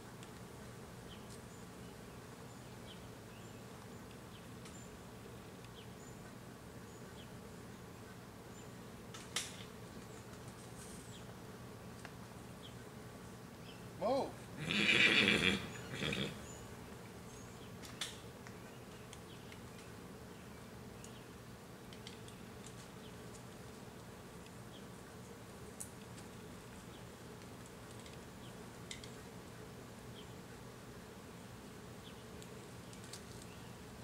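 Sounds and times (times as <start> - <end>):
insects buzzing: 0.3 - 34.0.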